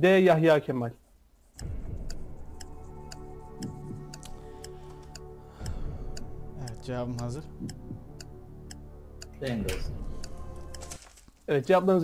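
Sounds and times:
clock ticking: 1.4s - 12.0s
tension music: 1.6s - 11.3s.

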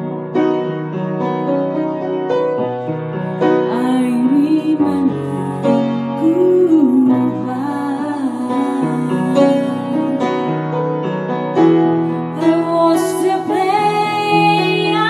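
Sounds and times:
piano sustained chords: 0.0s - 15.0s
woman singing: 3.7s - 10.4s, 12.4s - 15.0s.

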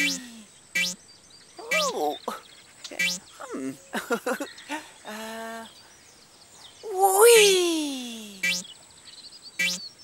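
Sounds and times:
falling whee voice: 6.8s - 8.4s
character voice humming: 6.9s - 8.4s.

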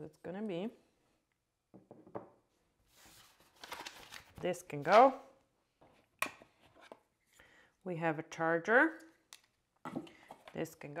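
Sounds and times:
person speaking: 4.4s - 5.3s.

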